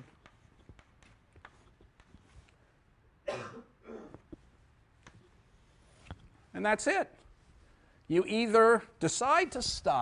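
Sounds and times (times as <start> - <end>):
chalk tapping on blackboard: 0.0 - 2.4
person coughing: 3.2 - 4.3.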